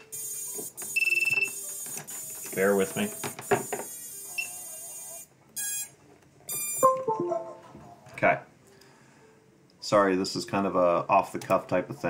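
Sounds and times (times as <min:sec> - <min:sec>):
short high beeps: 0:06.5 - 0:07.6
chime-like tones: 0:06.8 - 0:07.7
steady high electronic tone: 0:06.8 - 0:07.8.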